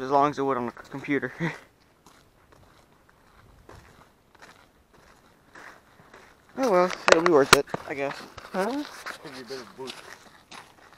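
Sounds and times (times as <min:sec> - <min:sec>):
faint soft footsteps: 0:00.4 - 0:10.9.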